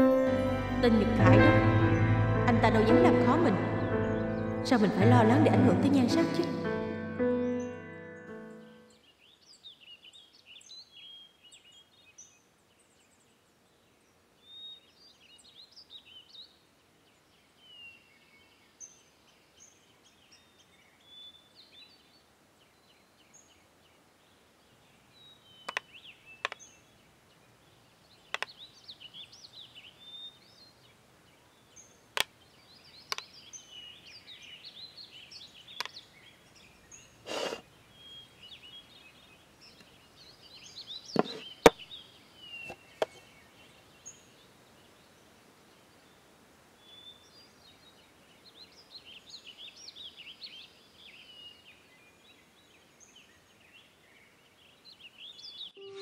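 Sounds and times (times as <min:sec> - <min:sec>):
small birds chirping: 0:07.4 - 0:56.0.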